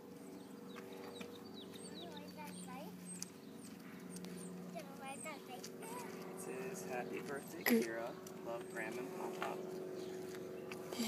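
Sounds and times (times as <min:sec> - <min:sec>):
small birds chirping: 0:00.0 - 0:11.0
steady low hum: 0:00.0 - 0:11.0.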